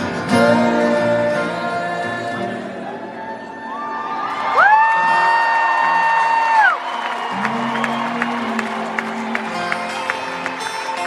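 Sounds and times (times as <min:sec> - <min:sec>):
acoustic guitar: 0:00.0 - 0:11.0
crowd noise: 0:00.0 - 0:11.0.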